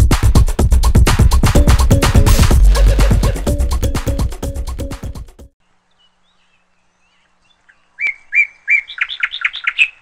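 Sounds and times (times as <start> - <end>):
songbird singing: 5.6 - 10.0.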